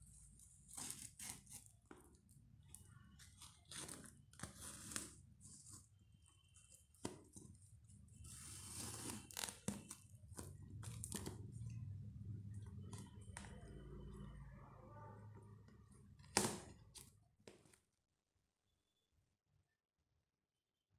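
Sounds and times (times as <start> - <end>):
plastic wrap crinkling and tearing: 8.2 - 11.8.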